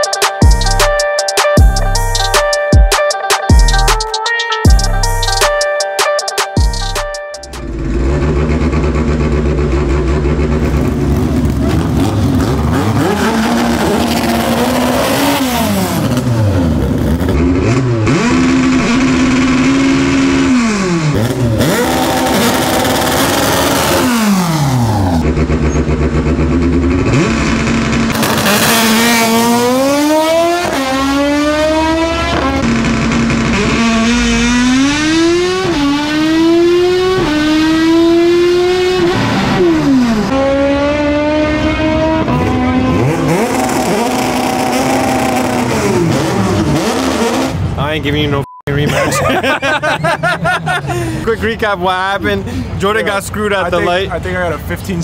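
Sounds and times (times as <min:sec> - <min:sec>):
car engine revving: 0:06.8 - 0:48.2.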